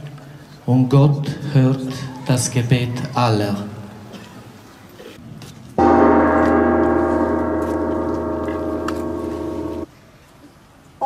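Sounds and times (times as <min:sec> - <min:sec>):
struck bell ringing: 0:05.8 - 0:09.9.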